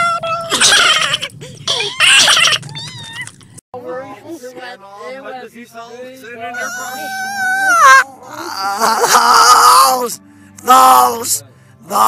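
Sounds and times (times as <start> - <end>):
cat yowling and meowing: 0.0 - 3.4, 6.6 - 10.0.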